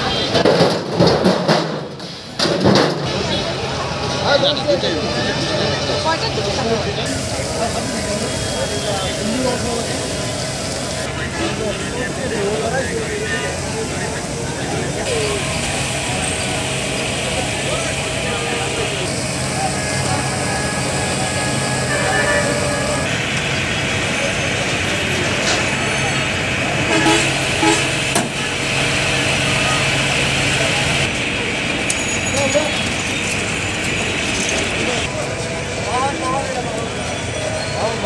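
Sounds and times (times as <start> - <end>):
crowd talking: 0.0 - 38.0
vehicle engines running: 0.0 - 38.0
vehicle horns: 7.1 - 11.0, 18.0 - 23.2, 26.7 - 28.4.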